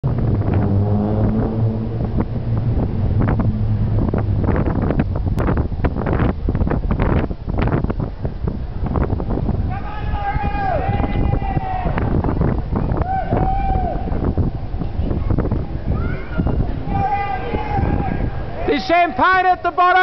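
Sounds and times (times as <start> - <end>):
vehicle engine humming: 0.0 - 9.8
wind noise on microphone: 0.0 - 20.0
voices: 9.7 - 12.2, 12.8 - 20.0.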